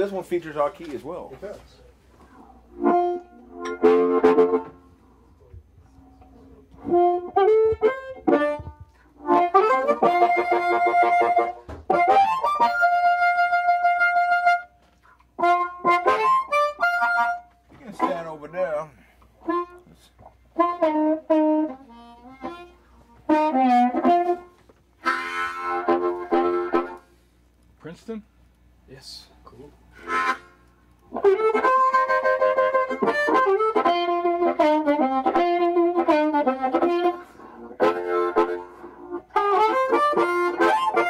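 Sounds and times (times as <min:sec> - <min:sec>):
blues harmonica: 0:02.4 - 0:05.0, 0:06.7 - 0:27.2, 0:29.9 - 0:41.0.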